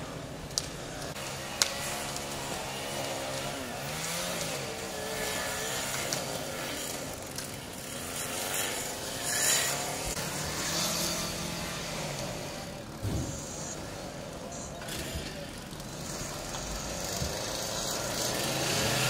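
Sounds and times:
fire engine running: 0.0s - 19.0s
hiss burst: 13.0s - 13.9s.

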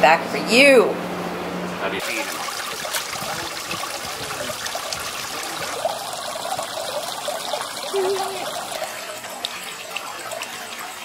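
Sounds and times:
waterfall splashing into pond: 2.0s - 11.0s.

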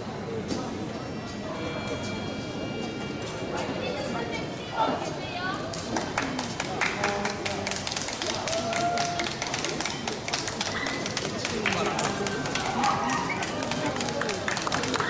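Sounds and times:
crowd chatter: 0.0s - 15.0s
spectators clapping: 5.7s - 15.0s.

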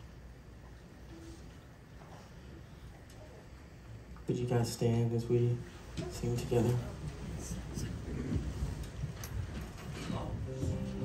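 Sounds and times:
people and seats shuffling: 0.0s - 11.0s.

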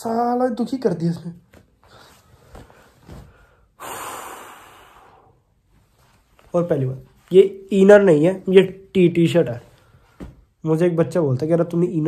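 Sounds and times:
man breathing: 1.8s - 5.9s
loud breath blown out: 3.6s - 5.4s.

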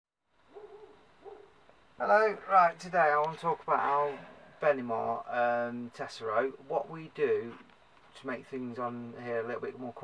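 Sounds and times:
hooting bird calls: 0.5s - 1.6s.

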